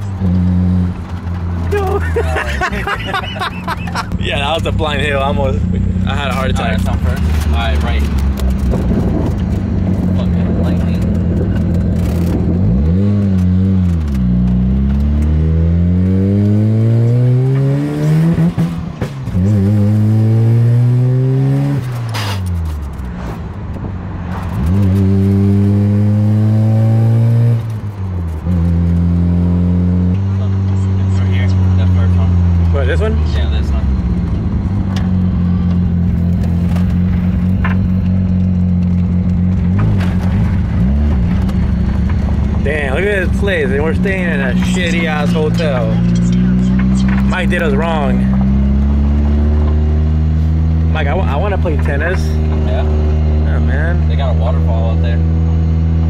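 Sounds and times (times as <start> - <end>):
car engine accelerating through gears: 0.0 - 56.0.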